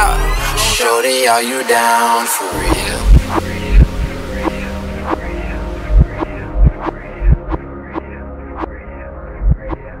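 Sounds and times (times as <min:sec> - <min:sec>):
low synth and bass tones: 0:02.5 - 0:10.0.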